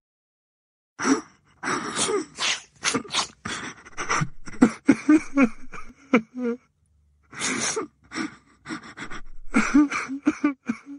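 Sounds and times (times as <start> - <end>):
person sobbing: 1.0 - 6.7, 7.3 - 10.9.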